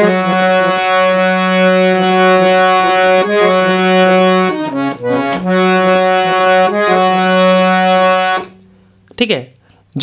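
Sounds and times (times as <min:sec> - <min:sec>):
harmonium playing slow melody: 0:00.0 - 0:08.9.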